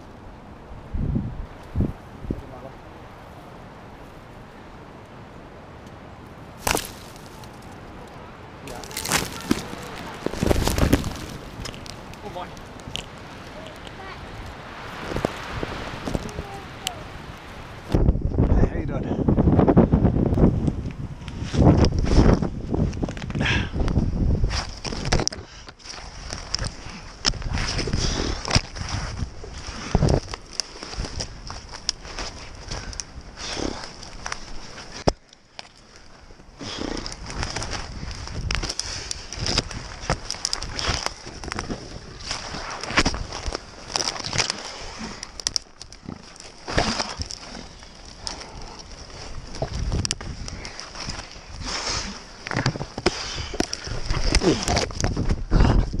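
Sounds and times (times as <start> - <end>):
tree branches rustling and cracking: 1.4 - 18.5, 20.3 - 56.0.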